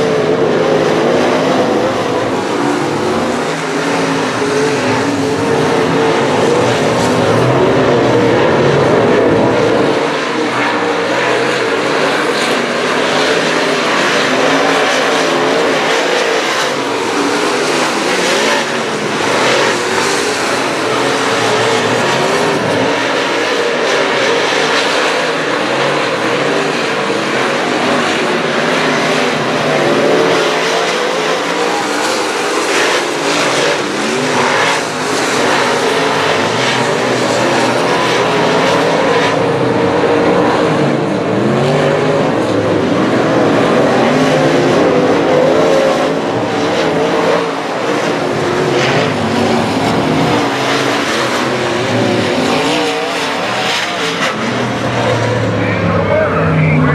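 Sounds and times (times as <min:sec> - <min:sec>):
race car engines revving: 0:00.0 - 0:56.9.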